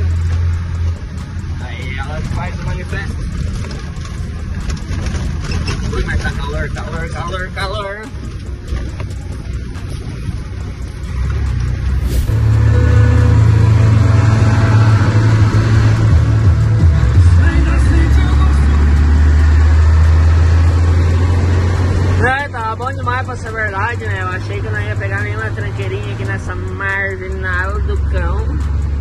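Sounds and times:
truck engine and road drone: 0.0 - 29.0.

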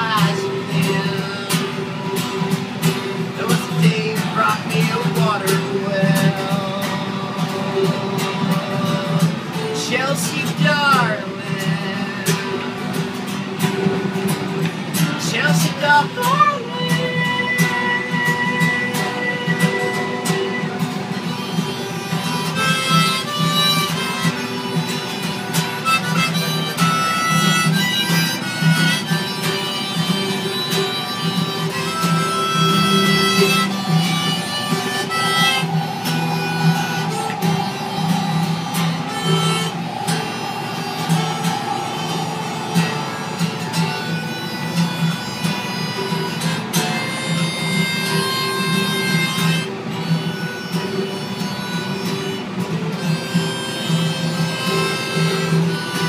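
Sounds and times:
acoustic guitar strumming: 0.0 - 56.0
harmonica playing: 0.0 - 56.0.

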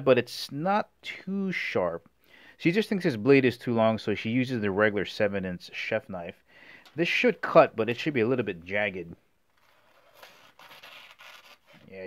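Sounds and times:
knife tearing through paper: 9.6 - 12.0.

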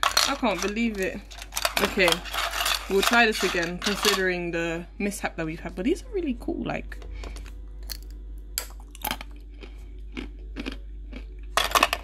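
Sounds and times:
chewing brittle candy: 7.8 - 12.0.

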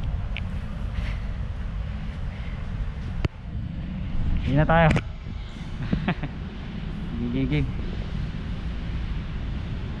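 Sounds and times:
low rumbling background noise: 0.0 - 10.0.

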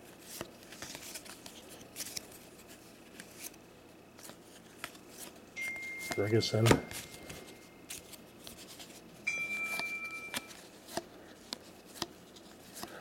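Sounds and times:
steady high-pitched tone: 5.6 - 7.8, 9.2 - 10.6
cards being thumbed through: 6.0 - 8.2.

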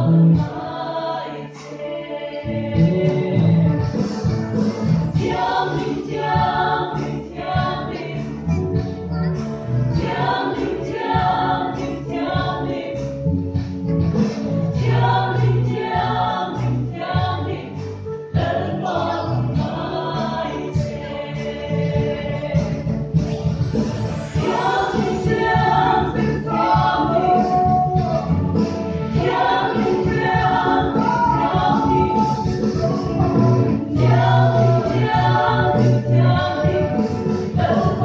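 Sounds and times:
mixed choir singing a hymn: 0.0 - 9.0, 9.9 - 38.0.

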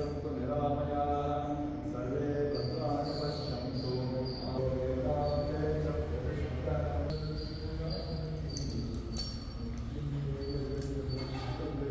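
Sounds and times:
man chanting: 0.0 - 11.9.

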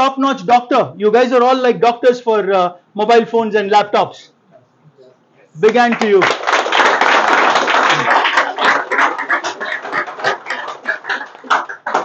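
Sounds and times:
audience applauding: 5.7 - 12.0.

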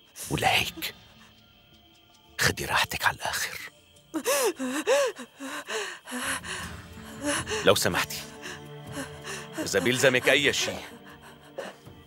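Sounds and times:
woman gasping: 4.2 - 7.7.

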